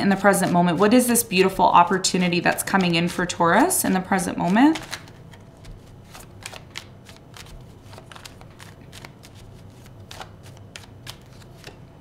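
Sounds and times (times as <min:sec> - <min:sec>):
cards being shuffled: 0:00.4 - 0:03.3, 0:03.9 - 0:12.0.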